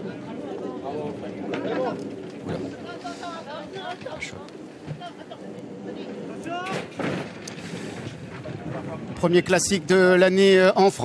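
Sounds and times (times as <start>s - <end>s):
starting gates banging open: 6.6s - 9.1s.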